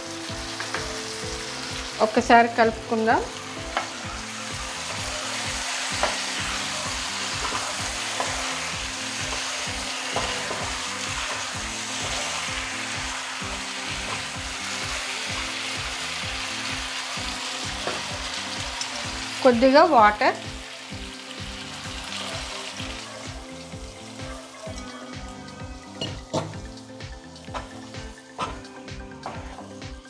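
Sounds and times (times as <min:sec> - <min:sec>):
food sizzling in a pan: 0:00.0 - 0:30.0.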